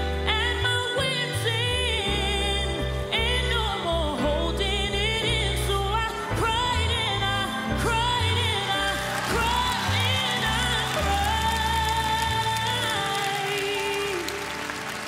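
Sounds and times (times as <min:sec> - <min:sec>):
bass and keyboard accompaniment: 0:00.0 - 0:15.0
woman singing soul ballad: 0:00.0 - 0:15.0.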